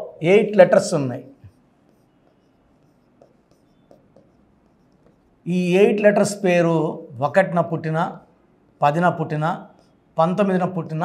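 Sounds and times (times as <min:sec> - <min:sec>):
marker pen writing on whiteboard: 0:00.0 - 0:11.0.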